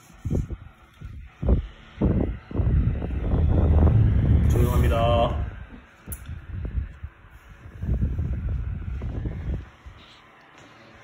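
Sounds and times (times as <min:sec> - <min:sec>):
fan airflow buffeting microphone: 0:00.0 - 0:11.0.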